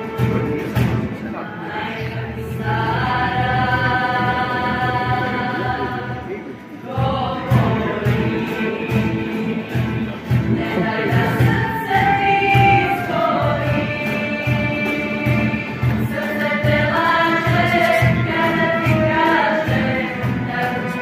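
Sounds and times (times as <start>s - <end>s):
female choir singing in harmony: 1.4s - 21.0s
cajon beat: 6.9s - 21.0s.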